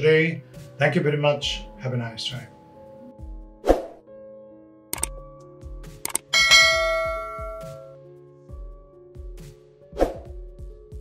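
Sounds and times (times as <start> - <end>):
soft background music: 0.0 - 11.0
notification bell chime: 6.4 - 7.9.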